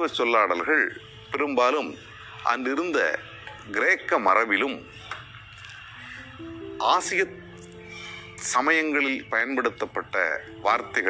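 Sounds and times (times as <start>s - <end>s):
soft keyboard music: 0.0s - 11.0s.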